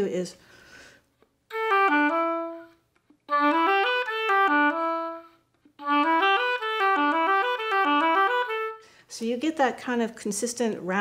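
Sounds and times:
solo oboe playing: 0:01.5 - 0:09.0.

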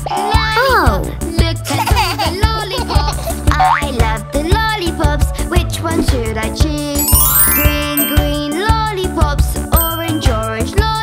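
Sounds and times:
person singing: 0:07.0 - 0:09.0
bouncy backing track: 0:07.0 - 0:09.2, 0:09.8 - 0:10.6.

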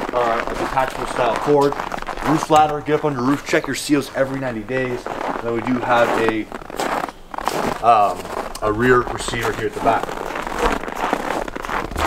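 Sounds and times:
footsteps crunching on snow: 0:00.0 - 0:12.0.

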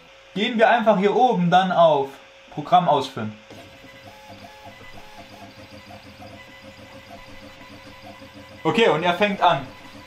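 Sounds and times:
stepper motor hum: 0:02.3 - 0:10.0
high-pitched motor chirps: 0:03.6 - 0:10.0.

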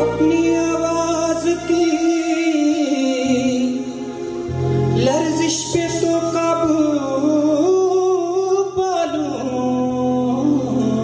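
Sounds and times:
low instrumental backing: 0:00.0 - 0:11.0
man singing into a microphone: 0:00.0 - 0:11.0.

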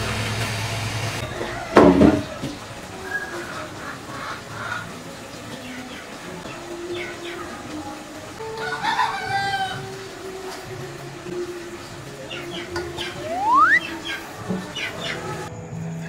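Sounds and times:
rooster crowing: 0:01.2 - 0:03.4, 0:08.4 - 0:10.0, 0:13.0 - 0:14.0
chicken calls: 0:01.2 - 0:10.6, 0:11.8 - 0:15.5.

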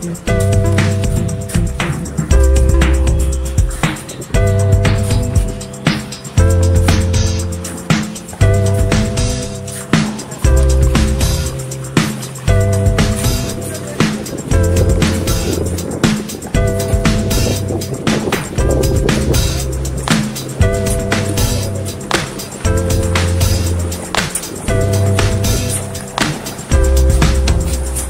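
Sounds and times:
background music with steady beat: 0:00.0 - 0:28.0.

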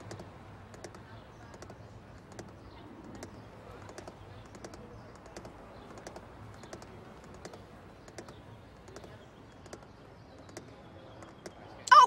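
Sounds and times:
light ticking clicks in car: 0:00.0 - 0:11.6.

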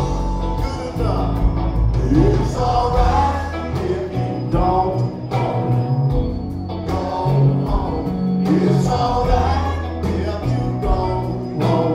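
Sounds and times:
live rock band playing: 0:00.0 - 0:11.9
sung vocals: 0:00.0 - 0:11.9.

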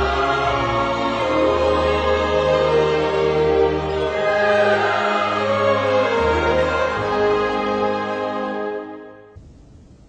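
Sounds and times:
choir holding sustained notes: 0:00.0 - 0:09.4
slow musical accompaniment: 0:00.0 - 0:09.5.

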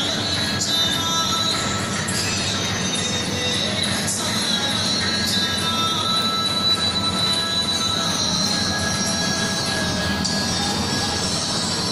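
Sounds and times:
kitchen extraction and gas ranges: 0:00.0 - 0:11.9.

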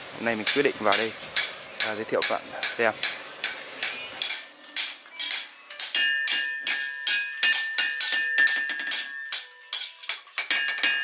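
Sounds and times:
hammers striking steel anvil: 0:00.4 - 0:11.0
metallic ringing tone: 0:03.8 - 0:11.0.

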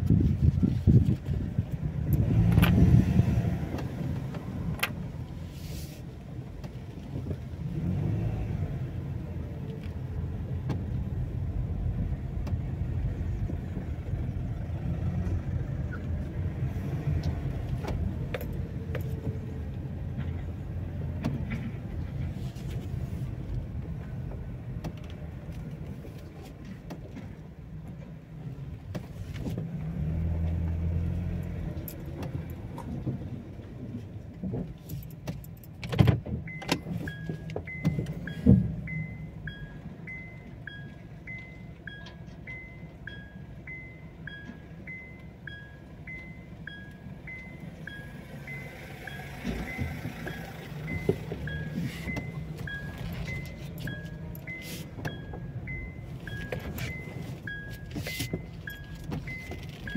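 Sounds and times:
turn signal ticking: 0:06.2 - 0:59.9
car engine idling: 0:36.4 - 0:59.9.

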